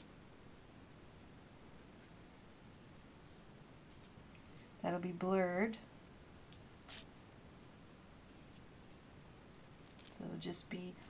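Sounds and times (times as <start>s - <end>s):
faint short hiss: 6.8s - 7.2s.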